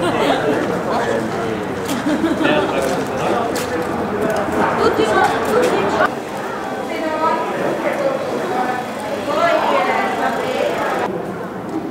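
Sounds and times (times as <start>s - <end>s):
overlapping chatter of voices: 0.0s - 11.9s.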